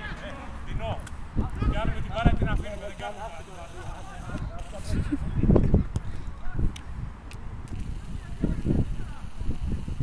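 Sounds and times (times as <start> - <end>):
man laughing: 4.8 - 5.6.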